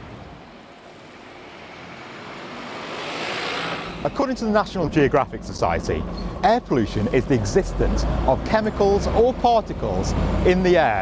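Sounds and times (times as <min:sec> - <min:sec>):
bus passing: 0:00.0 - 0:11.0.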